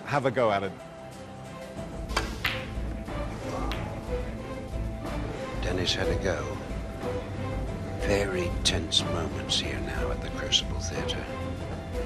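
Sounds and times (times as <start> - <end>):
snooker balls clicking: 3.7 - 4.0.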